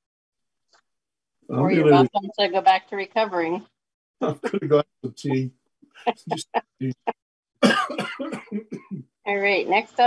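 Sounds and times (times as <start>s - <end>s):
man coughing: 4.2s - 5.4s, 7.6s - 9.0s
man laughing: 4.2s - 5.4s, 7.6s - 9.0s.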